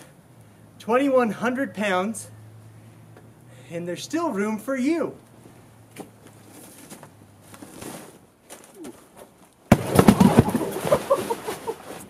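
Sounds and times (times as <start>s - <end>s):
loud crash: 9.7s - 11.0s
knocks and rattles: 9.7s - 11.1s.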